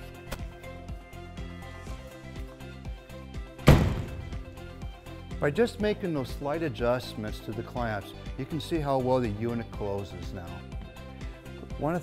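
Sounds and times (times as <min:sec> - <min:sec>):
background music: 0:00.0 - 0:12.0
tonneau cover thunk closing: 0:03.6 - 0:04.5.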